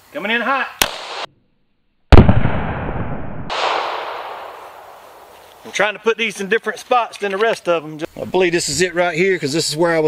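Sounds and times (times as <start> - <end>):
pistol shot with echo: 0.8 - 1.3, 2.1 - 5.3.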